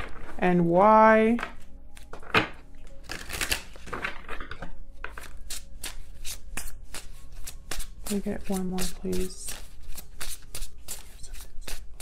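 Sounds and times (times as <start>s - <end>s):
cards being shuffled: 5.0s - 12.0s.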